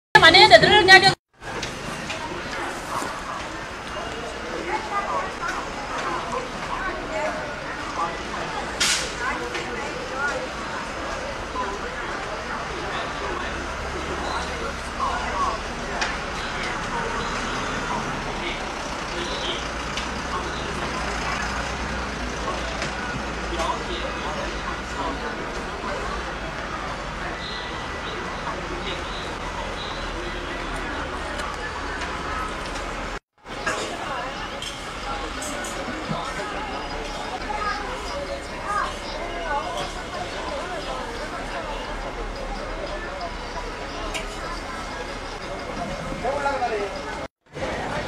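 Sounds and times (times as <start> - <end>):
distant indistinct chatter: 0.2 - 48.0
scattered voices: 0.2 - 48.0
truck engine rumble: 0.2 - 48.0.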